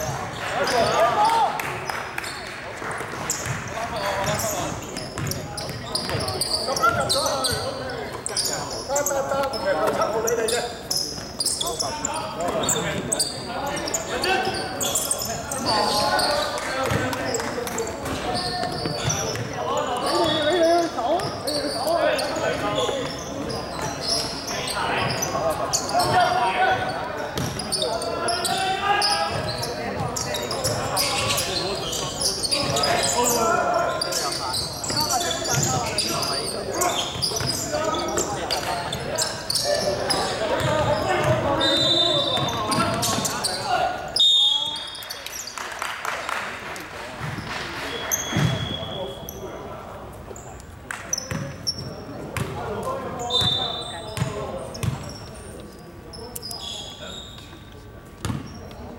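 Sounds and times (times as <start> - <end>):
voices calling and chatting: 0.0 - 58.9.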